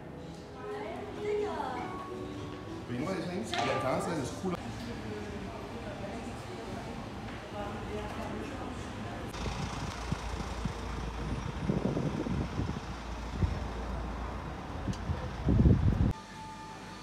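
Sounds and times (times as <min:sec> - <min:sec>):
road traffic: 0:04.4 - 0:17.0
wind rumble on microphone: 0:09.3 - 0:16.2.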